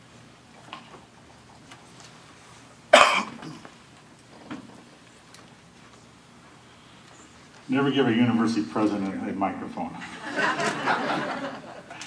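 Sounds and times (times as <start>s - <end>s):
person coughing: 2.9s - 3.7s.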